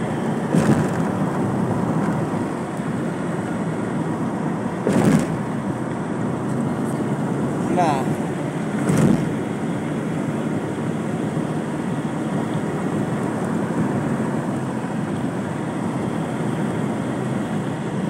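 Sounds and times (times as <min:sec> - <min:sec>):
car road and engine noise: 0:00.0 - 0:18.0
short thump: 0:00.5 - 0:01.2, 0:04.8 - 0:05.4, 0:08.8 - 0:09.3.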